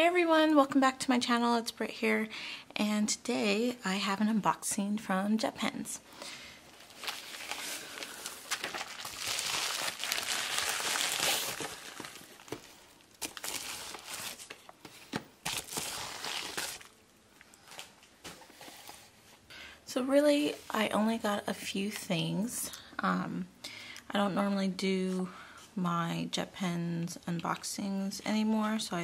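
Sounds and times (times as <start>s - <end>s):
plastic and paper crinkling: 6.6s - 19.1s.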